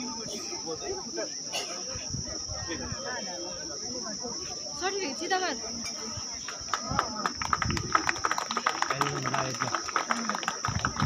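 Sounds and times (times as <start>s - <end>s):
faint voices: 0.0s - 11.0s
insects droning: 0.0s - 11.0s.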